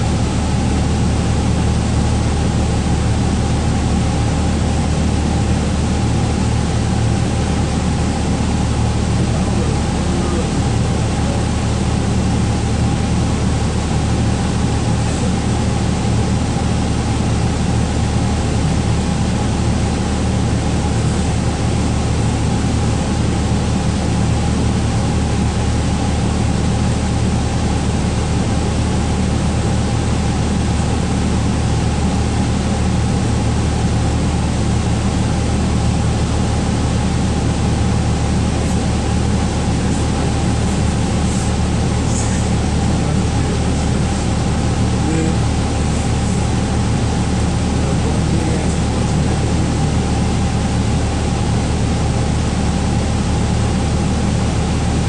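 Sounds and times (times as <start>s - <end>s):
bus engine idling: 0.0s - 55.0s.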